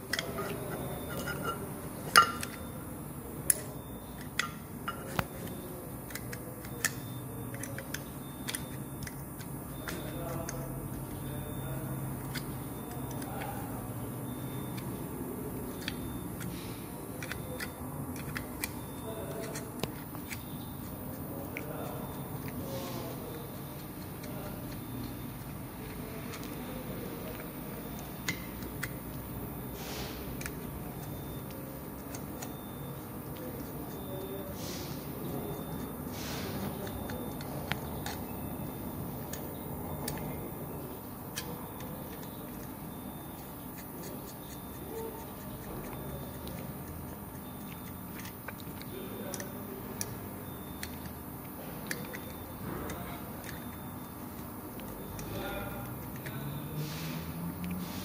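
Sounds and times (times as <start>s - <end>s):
metal parts clicking and tapping: 0.0s - 2.6s, 3.5s - 10.6s.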